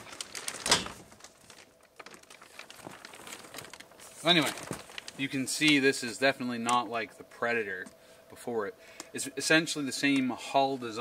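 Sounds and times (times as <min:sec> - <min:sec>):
plastic wrapping crinkling: 0:00.0 - 0:07.0.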